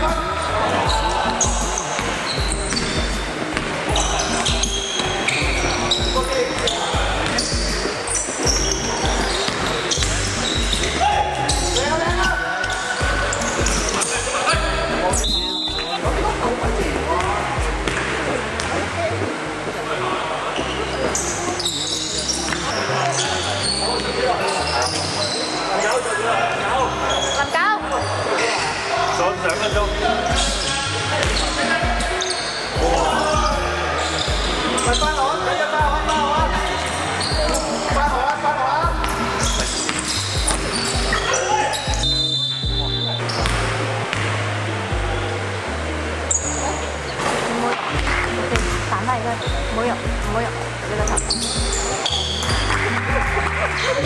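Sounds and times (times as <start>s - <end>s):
sneakers squeaking: 0.0s - 19.8s, 20.5s - 26.0s, 26.9s - 28.8s, 29.5s - 44.4s, 46.3s - 54.0s.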